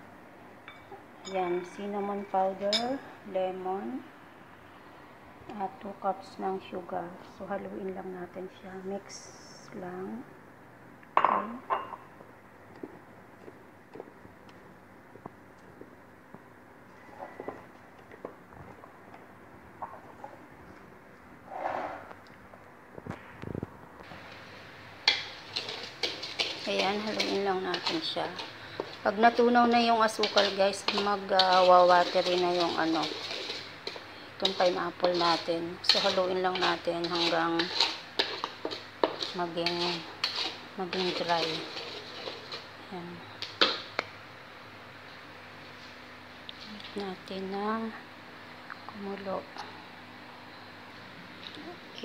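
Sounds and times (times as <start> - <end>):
spatula stirring jam in metal pan: 24.3 - 42.7
wooden spoon scraping in a pot: 25.1 - 42.8.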